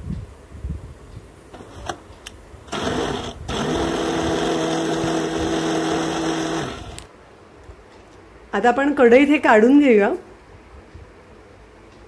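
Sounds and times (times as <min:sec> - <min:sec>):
mixer grinder running: 0:01.6 - 0:02.0, 0:02.7 - 0:07.1.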